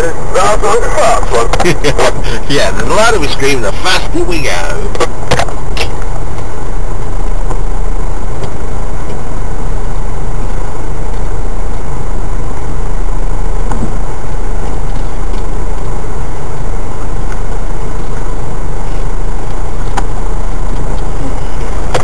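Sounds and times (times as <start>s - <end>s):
vehicle engine running: 0.0s - 22.0s.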